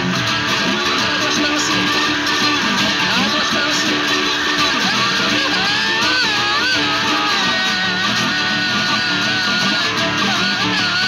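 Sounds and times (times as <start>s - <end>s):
acoustic blues guitar: 0.0s - 11.0s.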